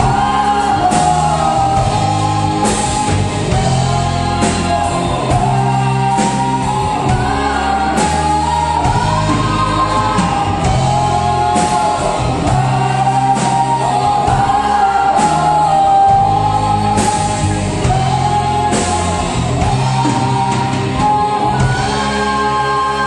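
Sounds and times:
live rock band playing: 0:00.0 - 0:23.0
woman singing: 0:00.0 - 0:23.0.

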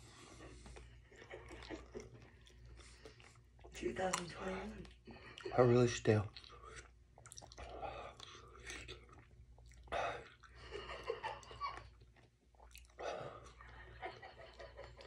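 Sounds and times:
man chewing crunchy chip: 0:06.3 - 0:10.6, 0:11.5 - 0:13.7.

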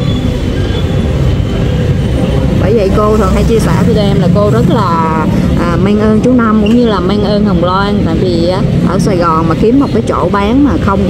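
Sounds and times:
street traffic engines rumbling: 0:00.0 - 0:11.0.

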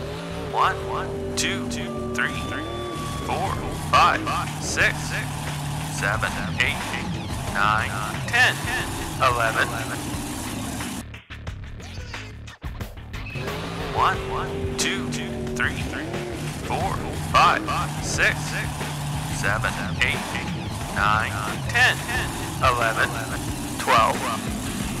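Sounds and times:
cartoon truck engine revving: 0:00.0 - 0:11.0, 0:13.2 - 0:25.0.

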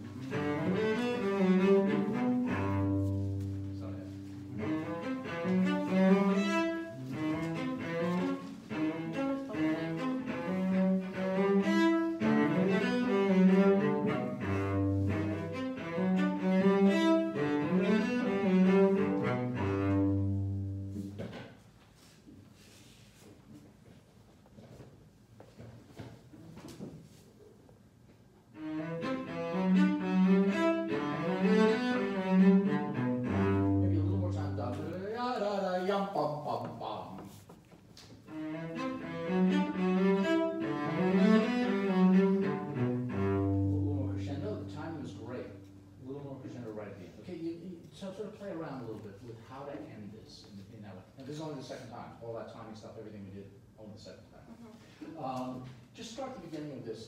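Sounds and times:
bowed cello: 0:00.0 - 0:21.6, 0:28.5 - 0:35.1, 0:38.2 - 0:47.6
faint knocks and shuffles: 0:20.8 - 0:28.5, 0:36.4 - 0:38.3.

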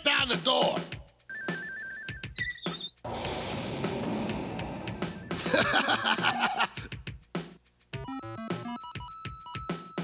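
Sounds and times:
cartoon soundtrack music: 0:03.3 - 0:07.0, 0:08.0 - 0:10.0.

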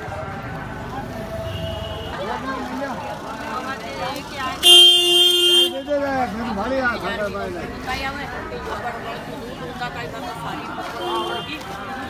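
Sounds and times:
people chattering: 0:00.0 - 0:12.0
vehicle horn: 0:01.5 - 0:02.2, 0:04.6 - 0:05.9, 0:11.0 - 0:11.7.

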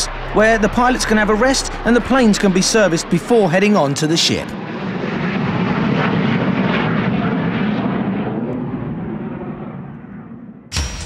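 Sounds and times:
jet engine roaring at take-off: 0:00.0 - 0:10.9.

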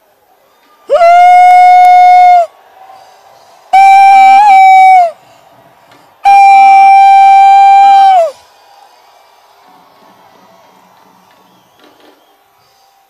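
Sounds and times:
crowd noise: 0:00.0 - 0:13.0
loud high woo shouts: 0:00.9 - 0:02.6, 0:03.7 - 0:05.2, 0:06.2 - 0:08.4.

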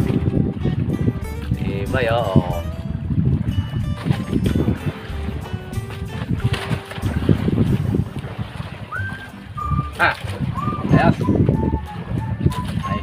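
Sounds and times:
faint background music: 0:00.0 - 0:13.0
wind buffeting the microphone: 0:00.0 - 0:13.0.

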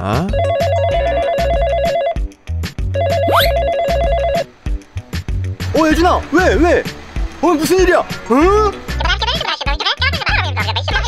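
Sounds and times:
phone ringtone warbling: 0:00.3 - 0:02.2, 0:03.0 - 0:04.5.

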